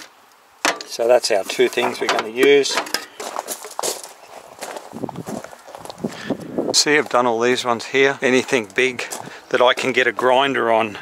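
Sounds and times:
metal lid coming off tin: 0.6s - 3.2s.

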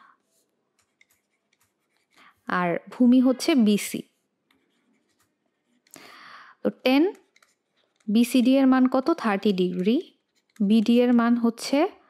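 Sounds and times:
scratchy pen stroke: 0.0s - 2.4s, 4.1s - 5.9s, 7.1s - 8.2s, 9.7s - 10.8s.

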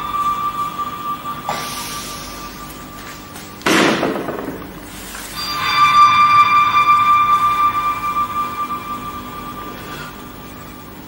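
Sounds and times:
sustained bell-like tone: 0.0s - 11.0s.

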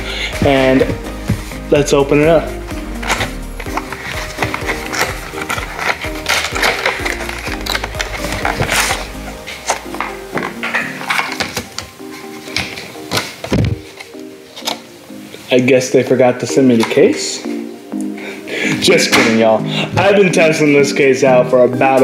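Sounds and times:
background music with steady beat: 0.0s - 22.0s
packaging clicks and rustles: 3.0s - 15.0s.

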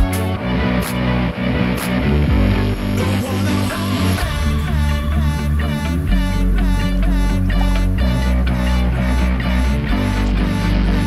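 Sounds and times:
background music with bass and guitar: 0.0s - 11.0s.

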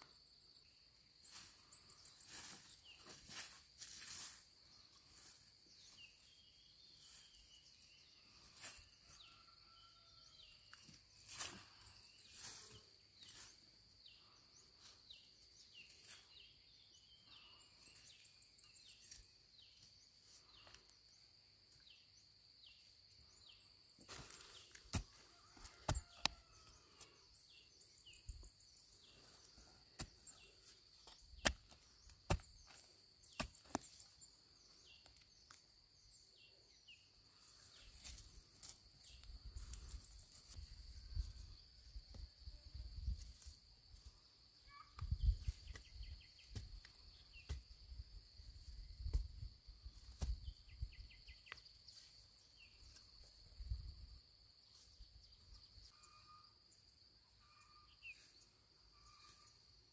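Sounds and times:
knife chopping into dry soil: 24.2s - 26.4s, 29.9s - 30.4s, 31.0s - 34.1s, 45.0s - 47.8s, 49.0s - 49.4s, 50.0s - 50.5s.

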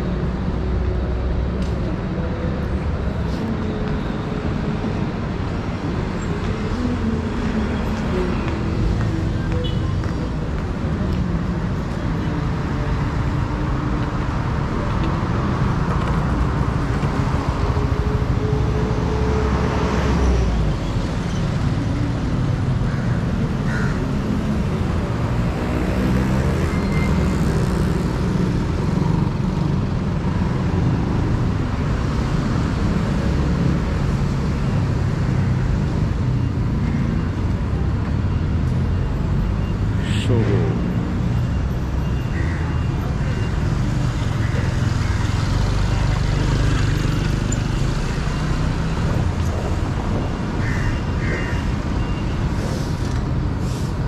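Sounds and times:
cars and motorbikes passing: 0.0s - 54.0s.

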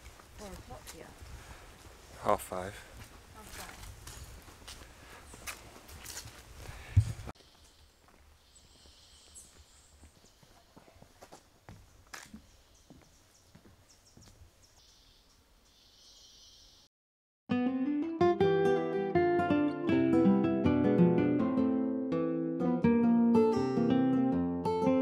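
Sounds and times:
footsteps on a trail: 0.0s - 14.5s.

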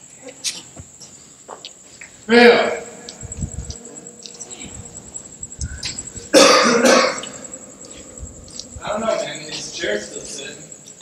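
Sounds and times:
person coughing: 6.2s - 7.4s.

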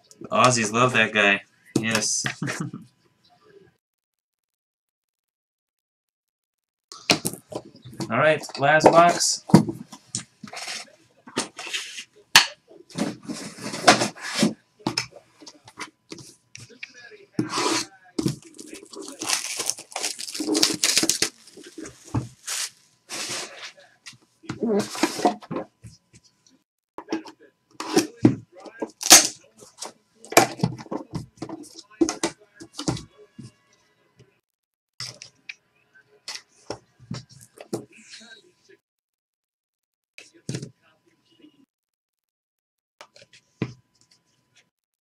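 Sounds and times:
cardboard scraping and rubbing: 13.0s - 14.6s, 17.4s - 23.8s.

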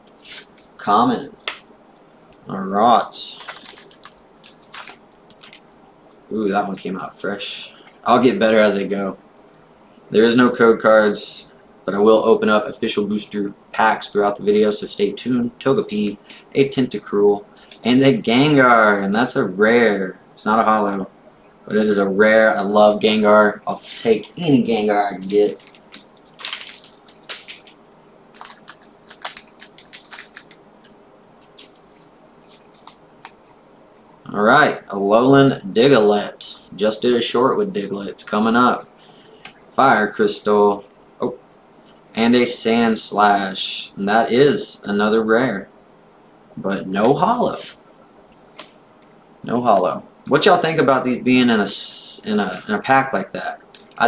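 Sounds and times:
foil wrapper crinkling and tearing: 3.3s - 5.7s, 25.2s - 33.4s, 52.4s - 52.8s
cards being handled: 3.4s - 5.7s, 23.8s - 33.6s, 52.4s - 52.8s.

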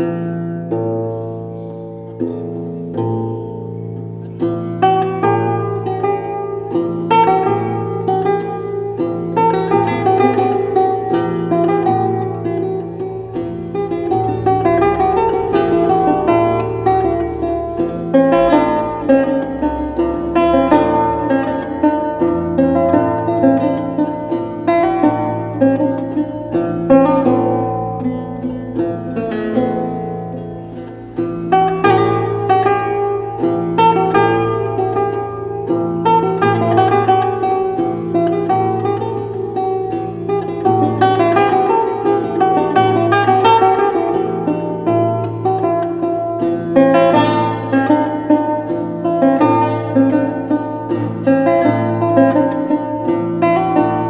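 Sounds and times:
lute playing: 0.0s - 54.0s.

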